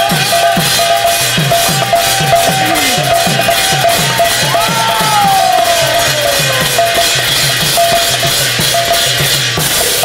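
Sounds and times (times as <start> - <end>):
brass hand cymbals clashing: 0.0 - 10.0.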